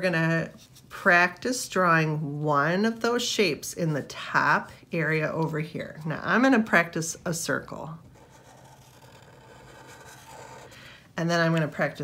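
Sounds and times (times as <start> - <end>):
marker scratching on paper: 8.1 - 10.8.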